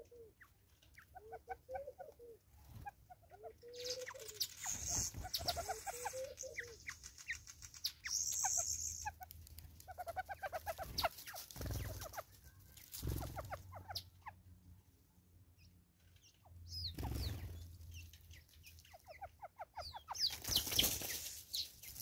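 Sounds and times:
wild birds chirping: 0.0 - 14.6, 15.6 - 22.0.

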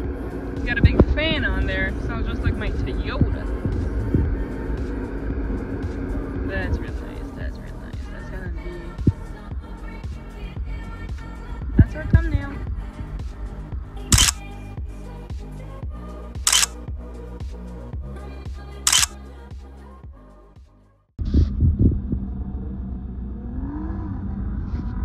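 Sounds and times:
background music: 0.0 - 21.0
camera shutter sound effect: 14.1 - 14.4, 16.5 - 16.8, 18.9 - 19.2.

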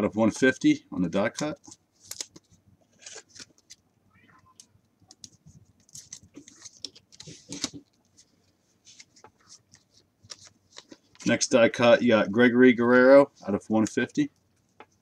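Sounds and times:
plastic rustling: 4.4 - 11.4.

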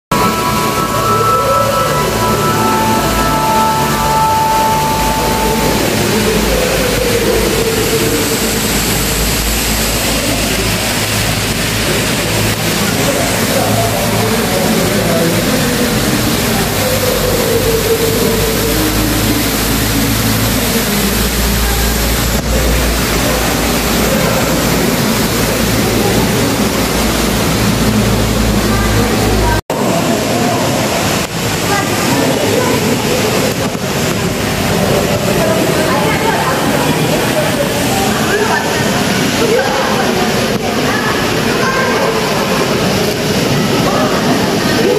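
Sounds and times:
music track: 0.1 - 29.6
loud steady rushing noise: 0.1 - 44.9.

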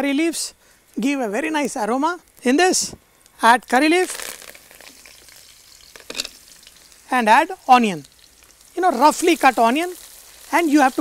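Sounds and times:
leaves sizzling in hot oil: 3.8 - 11.0.

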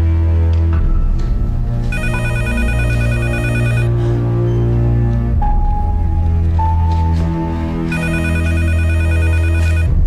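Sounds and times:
low steady music score: 0.0 - 10.0
desk telephone warbling ring: 2.0 - 3.9, 7.9 - 9.9.

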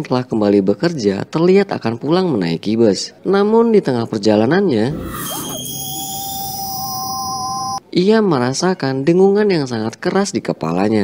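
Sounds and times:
high-pitched ringing tones: 4.7 - 7.8.

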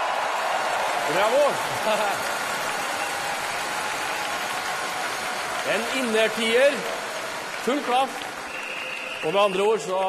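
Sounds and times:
audience applauding: 0.0 - 10.0.

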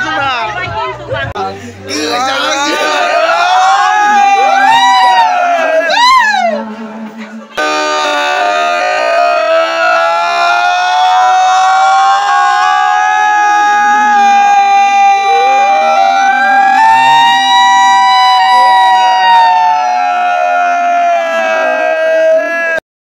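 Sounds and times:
siren wailing: 2.5 - 6.6, 7.6 - 21.8
second siren wail: 15.2 - 20.8.

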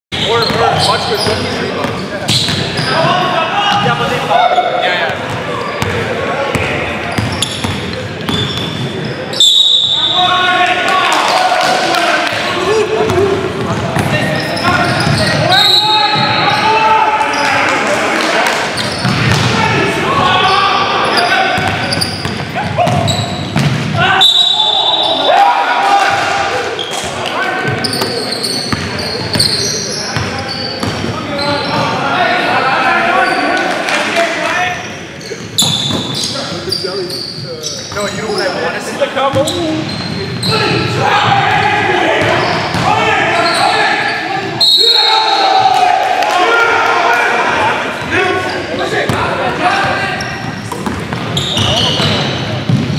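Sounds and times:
sneakers squeaking on court: 0.2 - 3.2, 3.8 - 10.2, 13.1 - 16.6, 18.7 - 19.6, 21.1 - 23.9, 26.8 - 32.0, 34.7 - 38.7, 39.3 - 40.8, 42.2 - 44.2, 47.9 - 52.9
players calling out: 0.2 - 52.9
basketball bouncing: 13.1 - 14.2, 19.0 - 19.6, 21.6 - 24.0, 42.2 - 42.9, 50.7 - 52.9.

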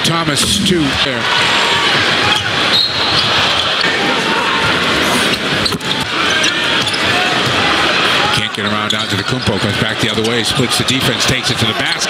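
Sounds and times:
loud crowd noise: 0.0 - 12.0.

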